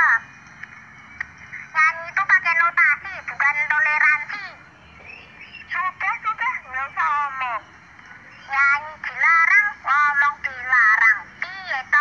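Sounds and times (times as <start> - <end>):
child's sing-song voice: 1.7 - 4.6, 5.7 - 7.6, 8.4 - 12.0.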